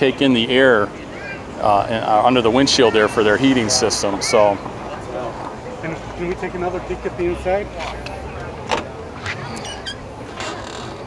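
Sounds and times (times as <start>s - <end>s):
car door squeak: 8.7s - 11.0s.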